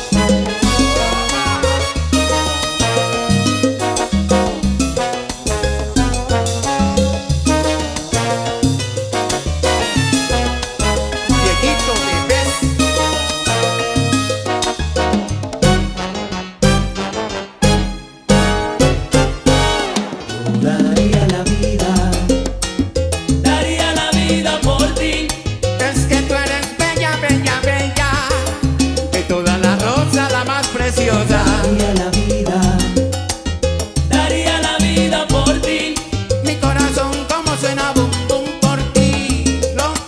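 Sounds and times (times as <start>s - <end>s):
congas: 0.0s - 40.0s
salsa band playing live: 0.0s - 40.0s
upright bass: 0.0s - 40.0s.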